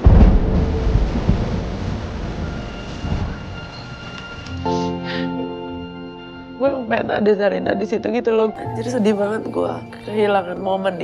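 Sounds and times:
heavy boom: 0:00.0 - 0:04.4
deep thunder-like rumble: 0:00.0 - 0:04.5.

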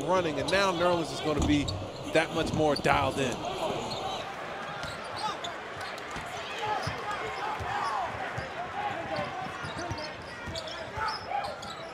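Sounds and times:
crowd noise: 0:00.0 - 0:11.9.

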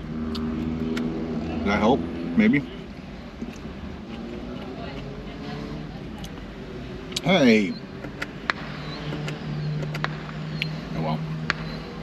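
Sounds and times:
car engine humming: 0:00.0 - 0:12.0.

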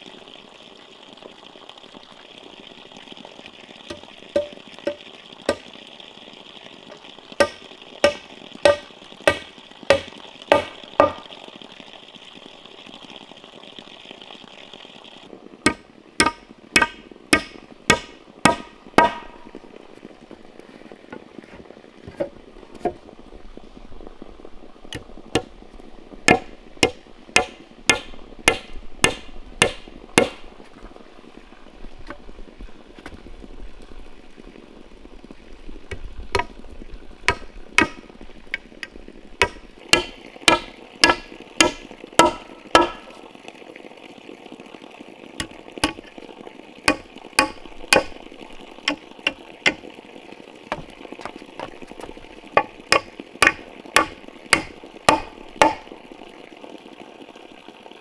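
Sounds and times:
hammer striking nails: 0:15.7 - 0:19.2, 0:39.4 - 0:43.0, 0:53.0 - 0:55.8.

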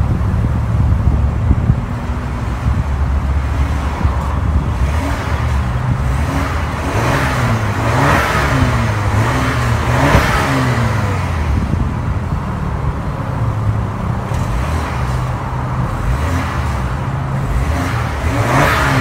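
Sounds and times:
car exhaust idling and revving: 0:00.0 - 0:19.0.

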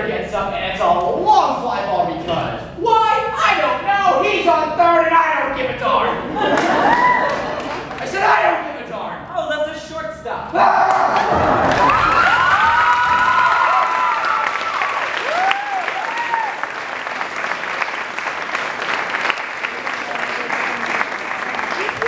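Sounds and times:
audience applauding: 0:06.5 - 0:08.1, 0:10.9 - 0:22.0
whooping cheers: 0:06.8 - 0:07.4, 0:10.8 - 0:16.7.

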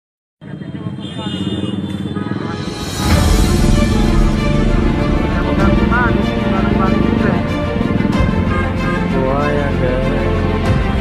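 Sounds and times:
indistinct voices: 0:00.4 - 0:10.4
steady low rumble: 0:02.4 - 0:09.4.

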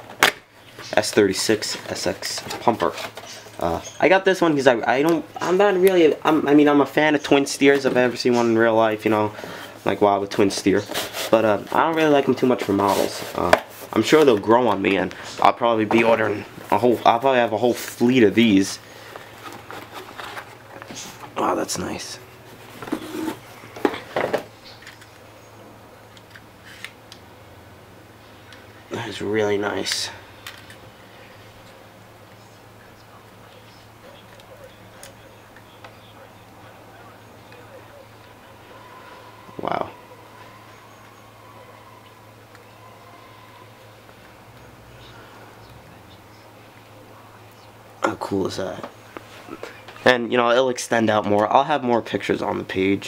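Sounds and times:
low electrical hum: 0:00.0 - 0:53.0
paper and bubble wrap crinkling: 0:19.0 - 0:21.2.

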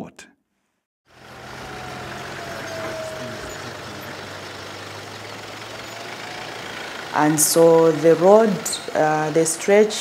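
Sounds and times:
low engine hum: 0:01.1 - 0:10.0
vehicle on dirt road: 0:01.1 - 0:10.0.

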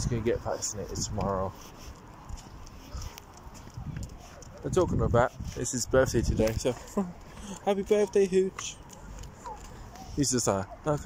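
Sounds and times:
wind rumble: 0:00.0 - 0:07.4
soft footsteps outdoors: 0:00.0 - 0:11.0.

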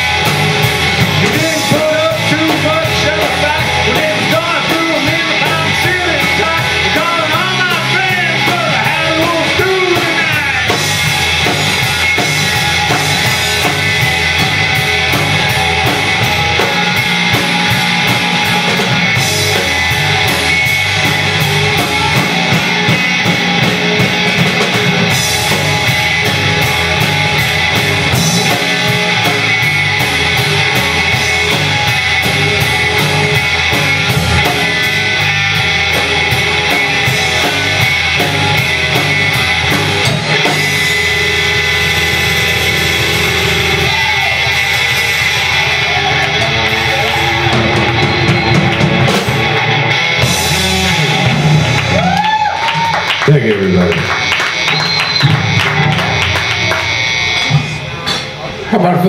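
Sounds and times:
electric guitar: 0:00.0 - 0:58.7
bass guitar: 0:00.0 - 0:59.0
drum kit: 0:00.0 - 0:59.0.

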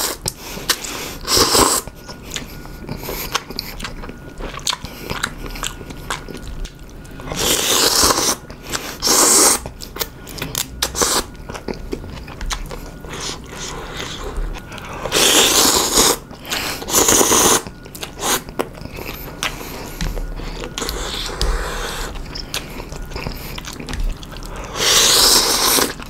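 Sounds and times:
wet mouth chewing: 0:00.0 - 0:26.0
person slurping noodles: 0:24.7 - 0:26.0.

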